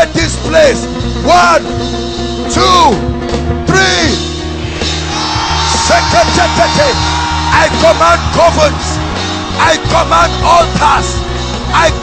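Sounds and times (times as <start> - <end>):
congregation shouting: 5.0 - 12.0.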